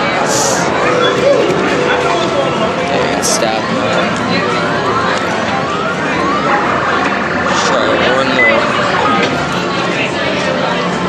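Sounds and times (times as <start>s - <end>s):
crowd chatter: 0.0s - 11.0s
short gliding beeps: 0.7s - 3.6s.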